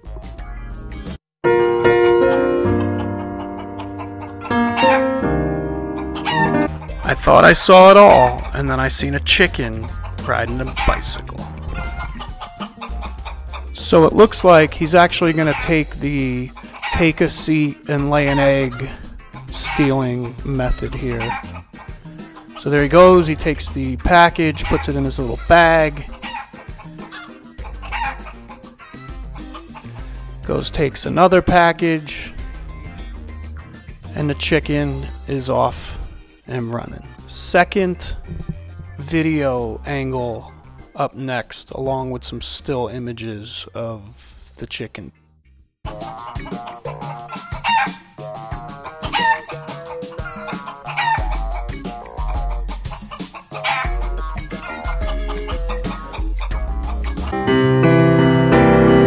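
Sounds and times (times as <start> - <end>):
background music with bass line: 0.0 - 41.0, 45.9 - 59.0
chicken clucking: 2.7 - 7.2, 8.0 - 14.0, 15.0 - 22.7, 24.4 - 30.1, 45.9 - 57.3.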